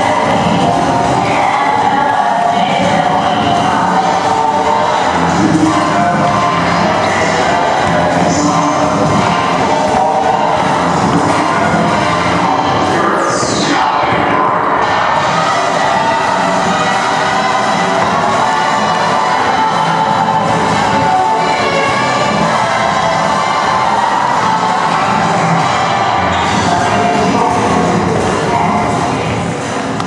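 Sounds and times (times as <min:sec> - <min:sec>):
latin ballroom dance music: 0:00.0 - 0:30.0.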